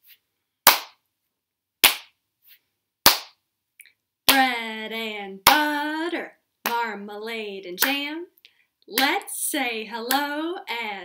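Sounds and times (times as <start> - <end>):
hand claps: 0.7 - 1.0, 1.8 - 2.2, 3.1 - 3.4.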